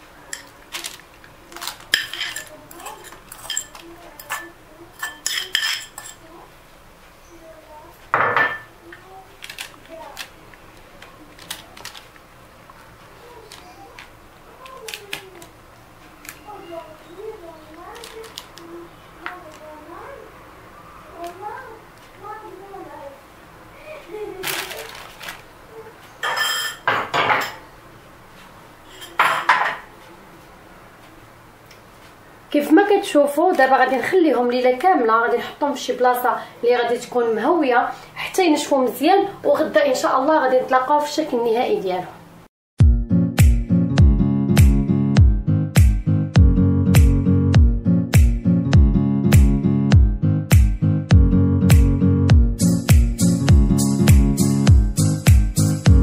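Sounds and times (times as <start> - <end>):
metal spoon clinking on ceramic bowl: 2.0 - 6.2, 26.2 - 27.6.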